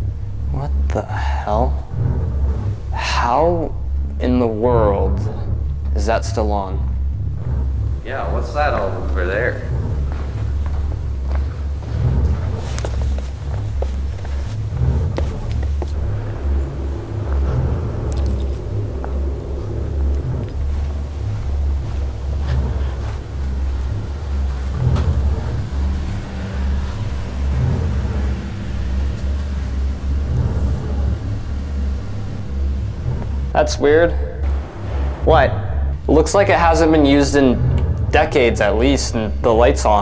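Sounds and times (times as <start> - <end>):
faint steady tones: 0.0 - 40.0
low rumbling drone: 0.0 - 40.0.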